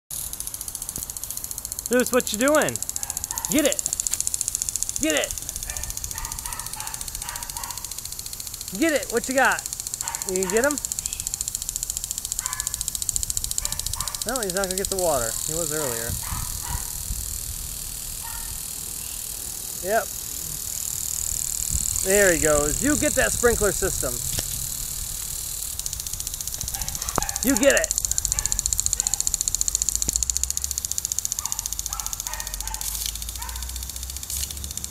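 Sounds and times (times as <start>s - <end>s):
lawn sprinkler ticking: 0.1s - 34.9s.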